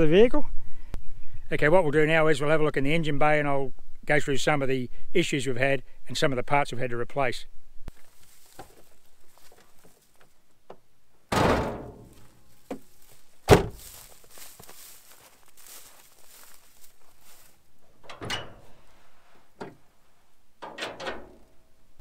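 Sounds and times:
car door slam: 11.3s - 12.1s, 13.5s - 13.8s
car door thunk with rattle: 11.3s - 12.1s, 13.4s - 13.8s.

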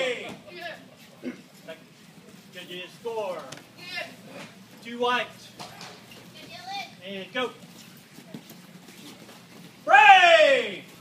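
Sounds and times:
low gym background: 0.0s - 11.0s
referee shouting: 9.8s - 10.9s.

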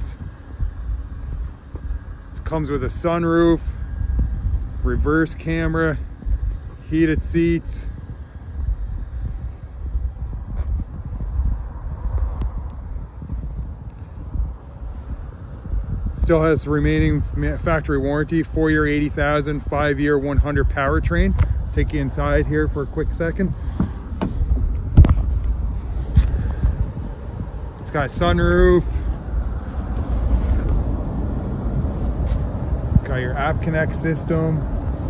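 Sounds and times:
wind buffeting microphone: 0.0s - 35.0s
person climbing into car seat: 23.7s - 26.5s.

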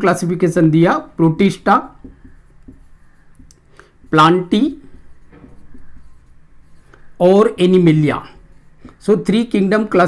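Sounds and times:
marker writing on whiteboard: 0.1s - 10.0s.

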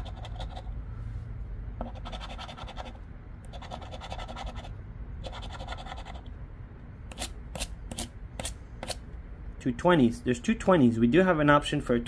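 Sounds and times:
scratching lottery ticket: 0.0s - 0.8s, 1.8s - 6.3s.

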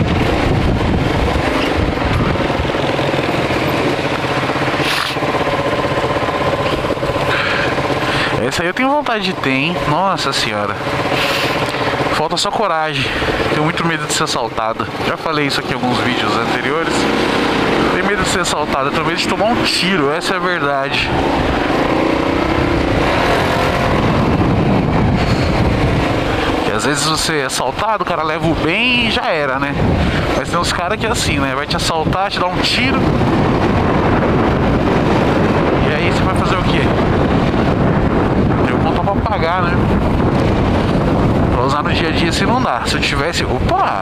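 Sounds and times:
motorcycle engine idling: 0.0s - 27.4s
wind rushing on microphone: 0.0s - 44.0s.

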